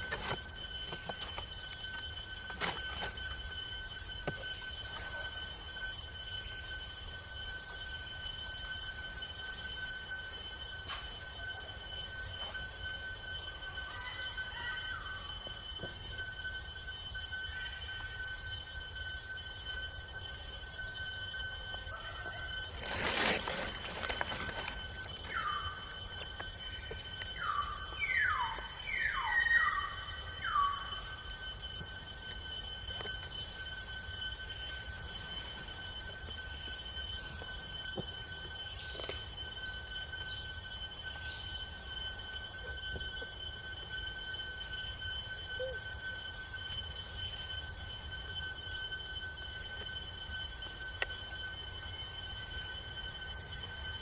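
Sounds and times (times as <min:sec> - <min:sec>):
insect drone: 0:00.0 - 0:54.0.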